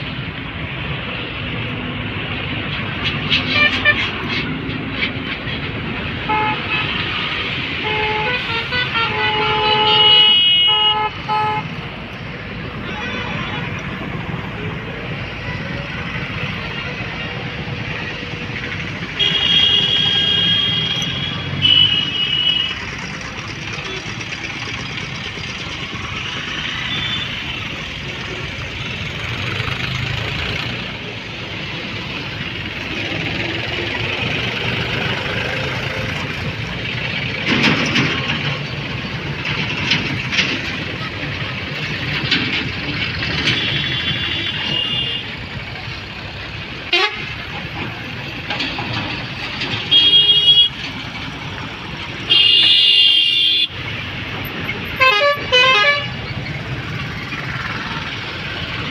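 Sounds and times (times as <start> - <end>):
traffic din: 0.0 - 58.9
vehicle horns honking: 6.2 - 11.7, 19.2 - 22.9, 43.4 - 45.4, 46.9 - 47.4, 49.8 - 50.8, 52.3 - 53.8, 54.9 - 56.2.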